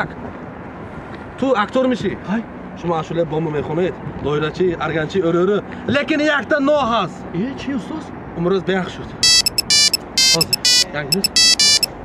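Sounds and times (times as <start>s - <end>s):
mobile phone ringtone beeps: 9.2s - 12.0s.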